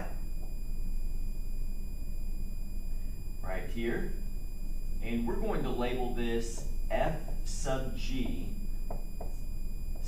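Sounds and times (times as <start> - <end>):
high-pitched whining tones: 0.0 - 10.0
low hum: 0.0 - 10.0.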